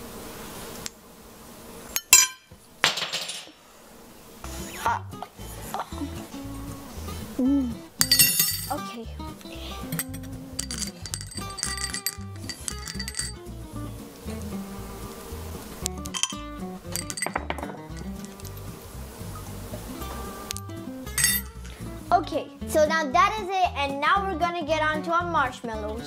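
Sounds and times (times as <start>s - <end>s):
metal spoon clinking glass bowl: 8.0s - 8.8s, 9.8s - 13.4s, 16.1s - 18.5s, 21.1s - 21.6s.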